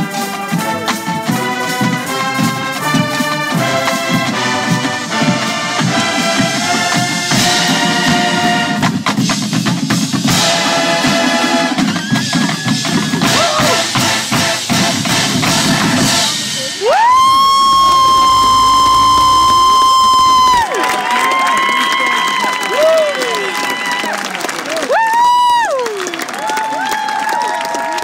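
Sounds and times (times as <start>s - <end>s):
brass and drums playing: 0.0s - 20.7s
crowd cheering: 10.3s - 28.0s
loud high whistle: 16.6s - 20.7s.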